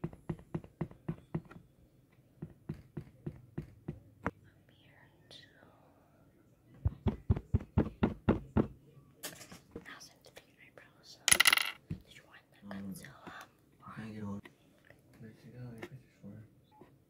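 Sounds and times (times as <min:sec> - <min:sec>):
quiet whispering: 0:04.3 - 0:06.8, 0:09.8 - 0:11.3, 0:12.0 - 0:16.5.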